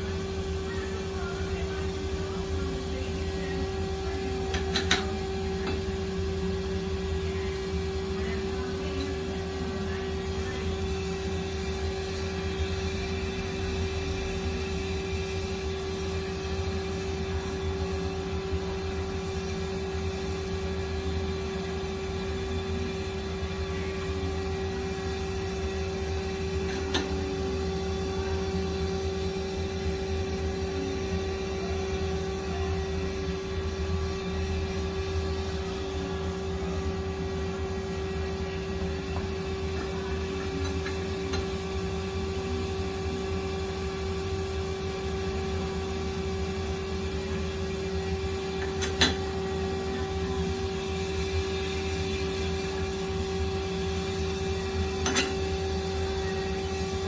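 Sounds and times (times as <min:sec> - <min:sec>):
machine hum: 0:00.0 - 0:57.0.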